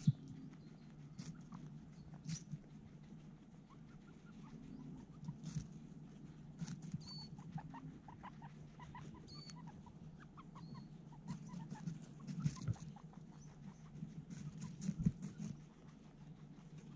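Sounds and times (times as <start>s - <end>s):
guinea pig squeaks: 0.0s - 16.9s
guinea pigs chewing and crunching: 0.0s - 16.9s.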